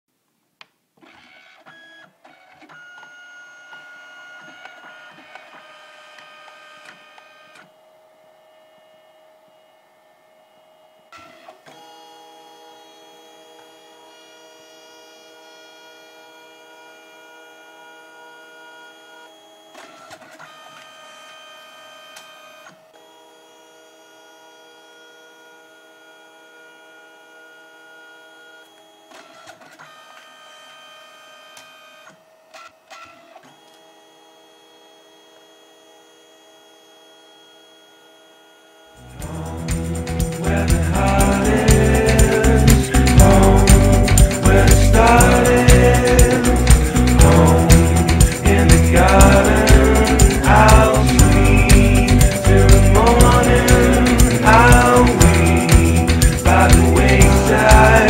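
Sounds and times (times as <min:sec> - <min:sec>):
printer motor whine: 0:01.0 - 0:45.0.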